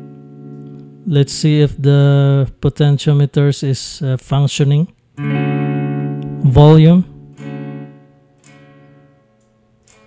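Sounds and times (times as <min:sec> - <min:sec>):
clean electric guitar notes: 0:00.0 - 0:02.6, 0:05.2 - 0:10.0.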